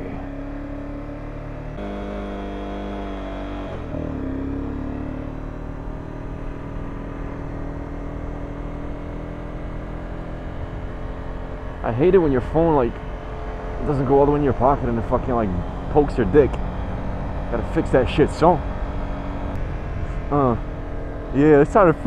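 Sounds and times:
motorcycle engine: 0:00.0 - 0:22.0
road and wind noise: 0:00.0 - 0:22.0.

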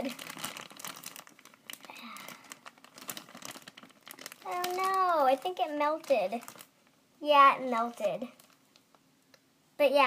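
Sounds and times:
plastic bag crinkling: 0:00.0 - 0:09.1.

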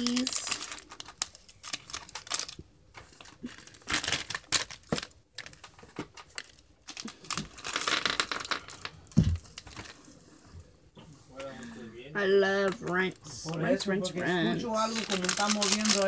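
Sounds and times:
plastic bag crinkling: 0:00.0 - 0:10.3, 0:14.7 - 0:16.0.

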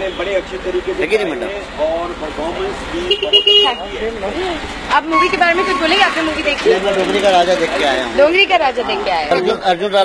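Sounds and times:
street speech: 0:00.0 - 0:10.0
vehicle horn toot: 0:03.1 - 0:03.9, 0:05.0 - 0:06.5.

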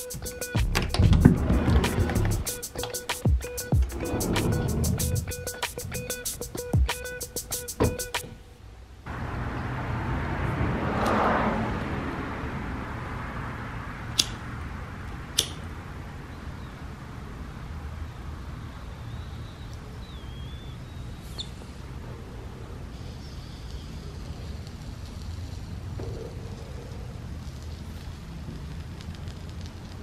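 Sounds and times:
music with a beat: 0:00.0 - 0:08.2
noisy whoosh: 0:00.6 - 0:02.6, 0:03.7 - 0:06.5
sharp clicks: 0:14.2 - 0:14.4, 0:15.4 - 0:15.6
faint high wavering chirp: 0:18.6 - 0:21.8.

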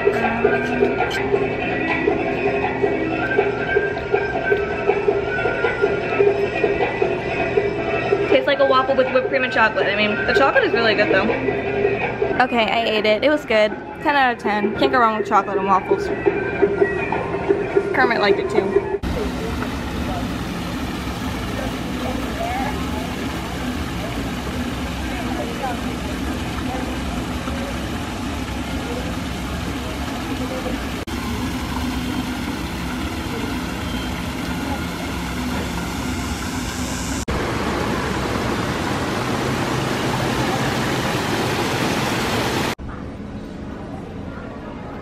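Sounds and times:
faint voices: 0:16.8 - 0:31.0
waterfall splashing into pond: 0:19.0 - 0:42.8.

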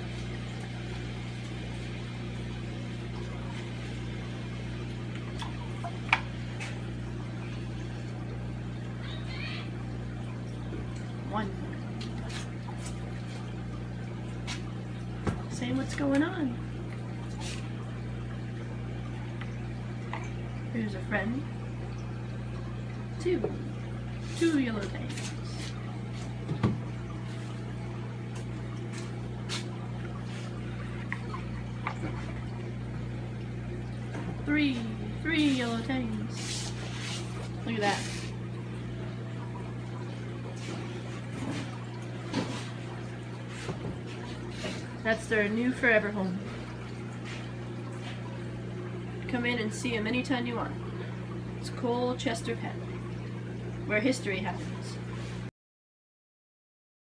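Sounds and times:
aquarium pumps humming: 0:00.0 - 0:55.5
water trickling and splashing: 0:00.0 - 0:55.5.

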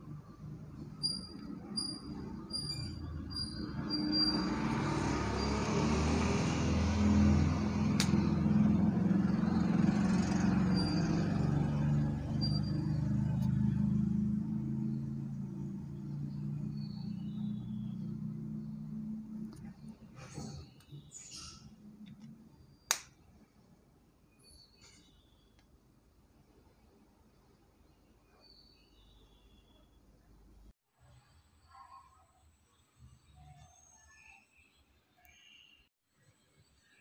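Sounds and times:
passing road vehicle rumble: 0:00.0 - 0:22.5.

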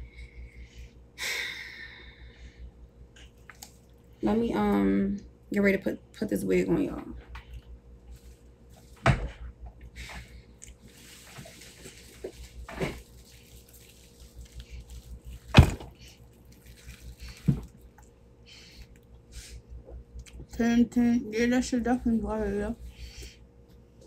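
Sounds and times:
low hum: 0:00.0 - 0:24.0.

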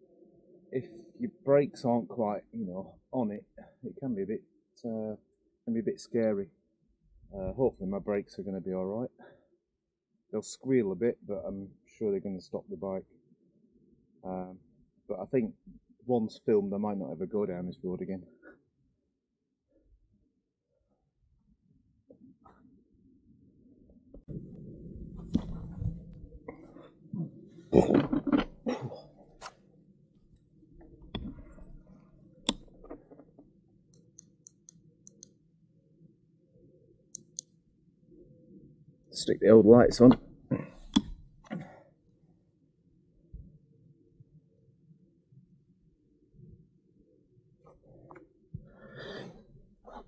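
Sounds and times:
low wind rumble on microphone: 0:24.2 - 0:26.6.

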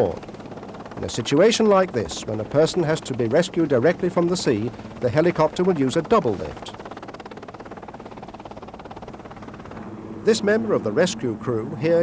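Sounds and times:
helicopter rotor pulsing: 0:00.0 - 0:12.0.

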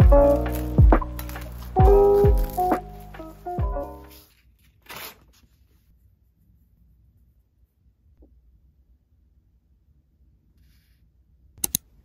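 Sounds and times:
paper rustling: 0:00.2 - 0:05.9.

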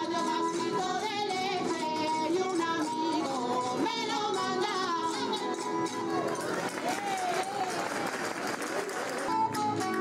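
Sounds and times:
folk singing: 0:00.0 - 0:07.1
plucked string instruments: 0:00.0 - 0:10.0.

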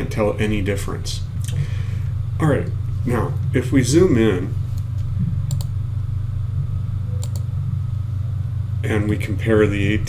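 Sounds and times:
steady low hum: 0:00.0 - 0:10.0
computer mouse clicks: 0:05.5 - 0:05.7, 0:07.2 - 0:07.5.

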